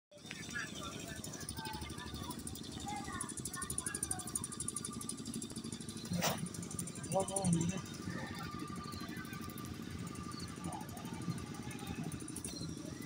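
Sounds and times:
faint distant voices: 0.2s - 13.0s.

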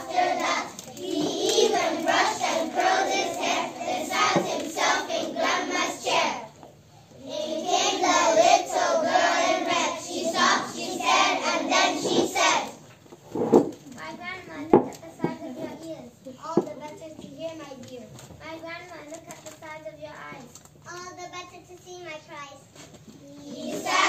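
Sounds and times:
children singing in unison: 0.0s - 6.4s, 7.2s - 12.7s, 23.5s - 24.0s.

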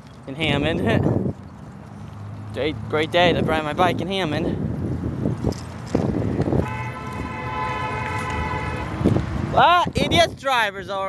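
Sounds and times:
car horn blast: 6.6s - 9.0s.

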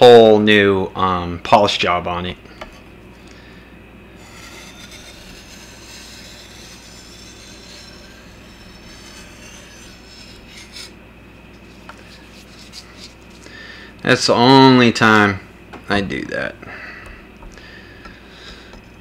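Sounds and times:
steel scraping on sharpening stone: 4.2s - 10.9s, 12.1s - 13.2s.

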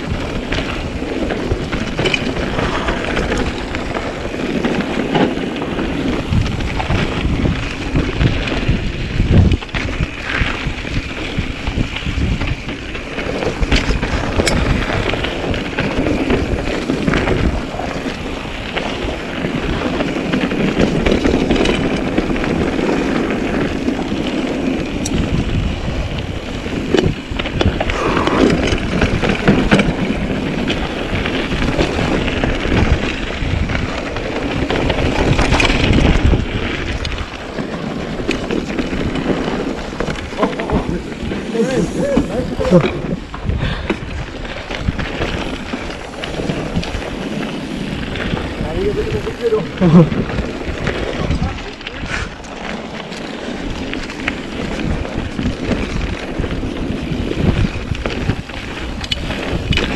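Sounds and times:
bike rattling over bumps: 0.0s - 59.9s
bike tyres crunching over dirt: 0.0s - 59.9s
wind rushing past microphone: 0.0s - 59.9s.

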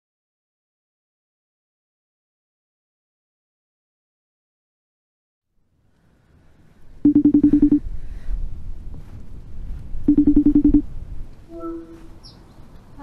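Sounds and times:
outgoing call ringing tone: 7.1s - 7.8s, 10.1s - 10.9s.

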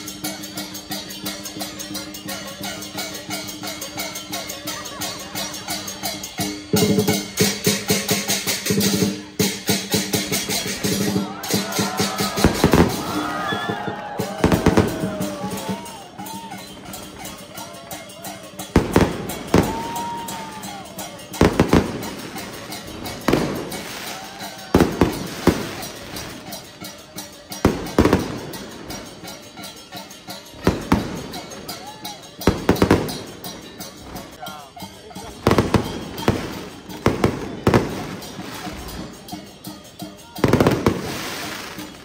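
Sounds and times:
crowd noise: 0.0s - 42.0s
loud sharp bangs with ringing: 18.6s - 26.8s, 27.4s - 34.4s, 35.2s - 39.1s.

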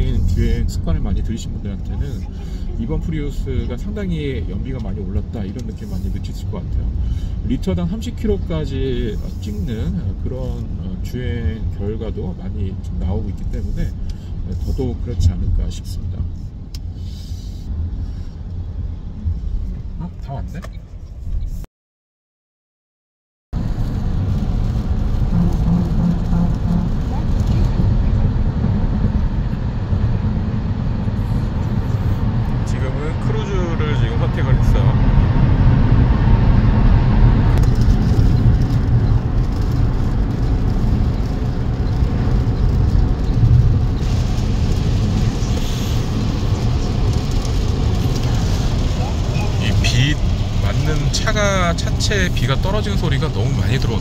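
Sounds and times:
rain on car: 0.0s - 17.0s, 23.6s - 54.0s
tyre and road rumble: 23.6s - 54.0s.

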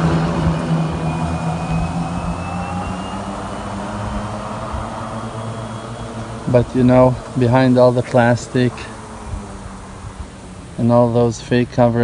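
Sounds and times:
faint rising whine: 0.0s - 12.0s
utility vehicle engine passing: 0.0s - 12.0s.

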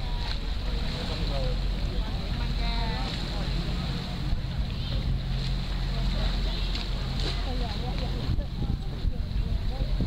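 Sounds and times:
distant voices: 0.0s - 10.0s
wind rumble on microphone: 0.0s - 10.0s.

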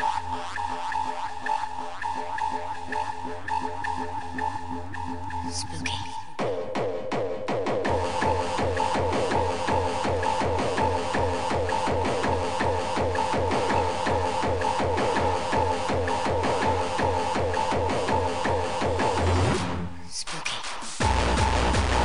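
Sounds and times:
fast tekno music: 0.0s - 19.8s, 20.6s - 22.0s
pulsing bass: 0.0s - 19.8s, 21.0s - 22.0s
pounding kick drum: 6.4s - 19.6s, 21.0s - 22.0s.

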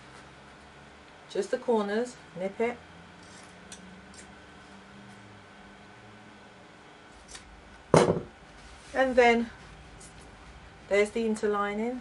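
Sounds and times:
knock: 8.0s - 8.3s.

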